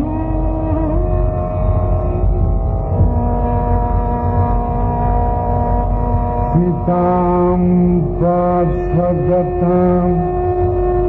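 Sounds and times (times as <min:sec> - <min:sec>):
man singing long held notes: 0:00.0 - 0:02.0, 0:06.4 - 0:11.0
tanpura drone: 0:00.0 - 0:11.0.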